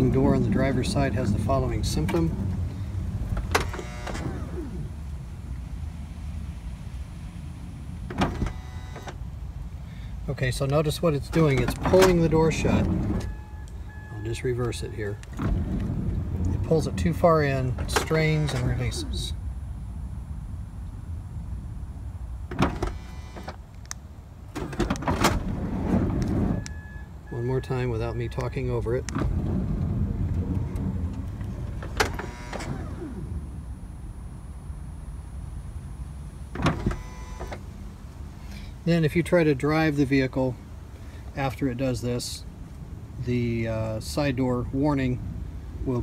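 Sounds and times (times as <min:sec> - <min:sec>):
sliding door motor humming: 0:00.0 - 0:05.1, 0:08.0 - 0:09.2, 0:11.5 - 0:13.6, 0:22.5 - 0:23.6, 0:24.6 - 0:26.7, 0:29.1 - 0:33.9, 0:36.5 - 0:37.7
door clunk: 0:11.3 - 0:13.4.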